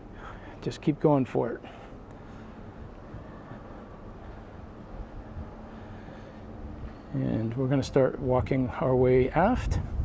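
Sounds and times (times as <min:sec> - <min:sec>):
faint steady hum: 0:00.0 - 0:10.0
low background rumble: 0:00.0 - 0:10.0.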